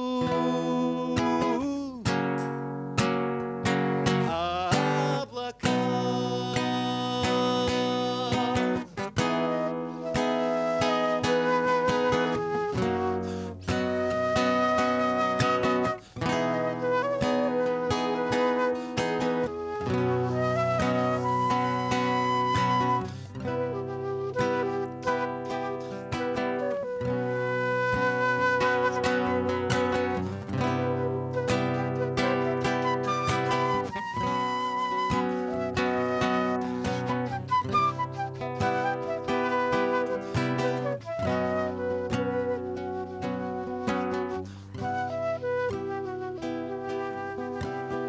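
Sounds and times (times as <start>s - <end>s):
flute melody: 0.0s - 2.0s, 3.9s - 48.0s
classical guitar picking and strumming: 0.0s - 48.0s.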